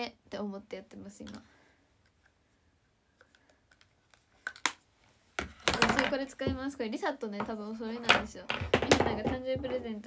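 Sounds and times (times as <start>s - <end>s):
makeup cases tapping and clicking: 5.4s - 6.8s, 7.4s - 9.9s.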